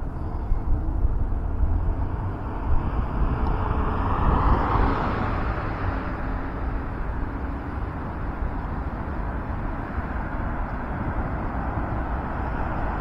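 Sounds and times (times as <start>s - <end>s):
steady low rumble: 0.0s - 13.0s
car passing: 0.7s - 13.0s.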